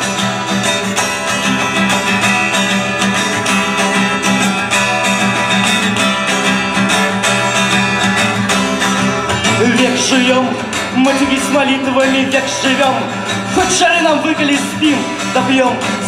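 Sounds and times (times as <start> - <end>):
acoustic guitar strumming: 0.0 - 16.0.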